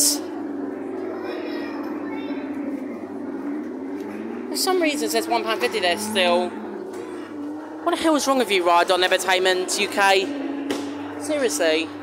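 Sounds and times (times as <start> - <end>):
kiddie ride electric motor humming: 0.0 - 12.0.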